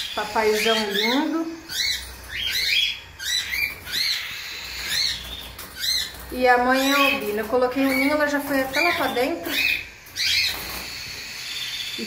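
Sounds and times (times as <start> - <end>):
budgerigars chirping: 0.0 - 12.0.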